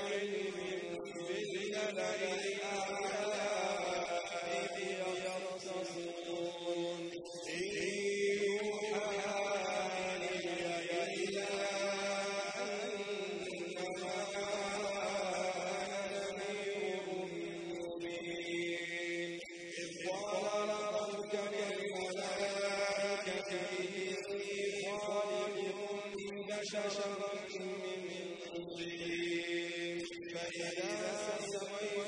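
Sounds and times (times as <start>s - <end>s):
man chanting: 0.0s - 32.0s.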